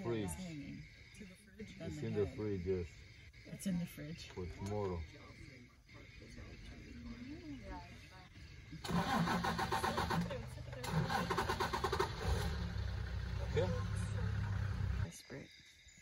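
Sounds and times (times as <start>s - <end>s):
engine idling: 6.0s - 15.1s
engine starter cranking: 8.8s - 15.1s.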